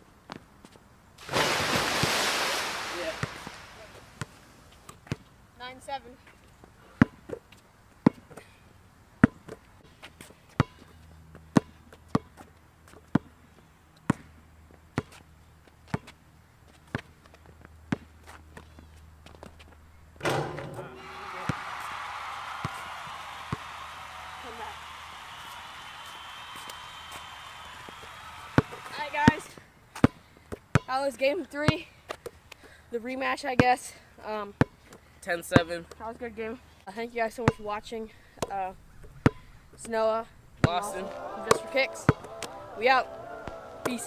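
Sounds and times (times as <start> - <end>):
basketball bouncing on asphalt: 3.3 - 5.3, 7.0 - 8.5, 9.2 - 9.6, 10.5 - 13.4, 14.0 - 19.6, 28.5 - 31.0
dense loud noise with voices: 40.7 - 44.0.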